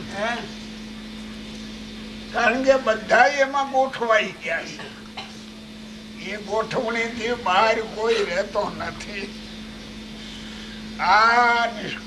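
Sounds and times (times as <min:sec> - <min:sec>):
constant low hum: 0:00.0 - 0:12.0
man speaking: 0:02.3 - 0:04.9, 0:06.2 - 0:09.3, 0:11.0 - 0:12.0.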